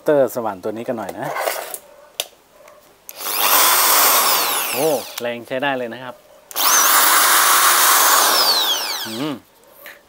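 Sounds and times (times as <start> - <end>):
drill motor whining: 3.1 - 5.3, 6.5 - 9.4
drill trigger click: 3.1 - 5.3, 6.5 - 9.2.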